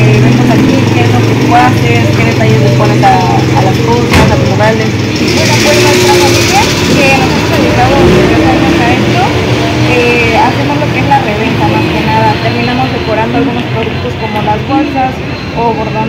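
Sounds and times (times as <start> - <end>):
indistinct voices: 0.0 - 16.0
vehicle engine running: 0.0 - 16.0.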